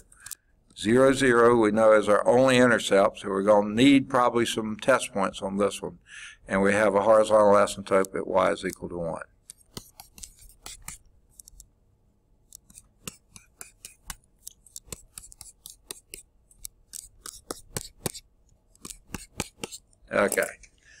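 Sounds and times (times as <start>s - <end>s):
stylus tapping on tablet screen: 9.4s - 11.7s, 12.5s - 19.9s.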